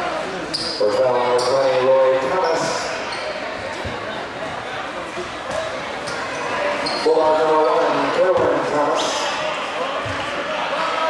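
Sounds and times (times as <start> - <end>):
crowd voices: 0.0 - 11.0
sneakers squeaking on court: 0.5 - 4.1, 5.5 - 8.6.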